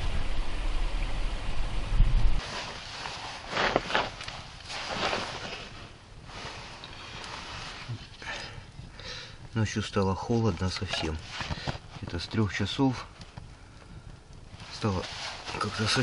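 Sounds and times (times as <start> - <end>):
low rumble: 0.0 - 2.4
campfire burning and crackling: 0.0 - 16.0.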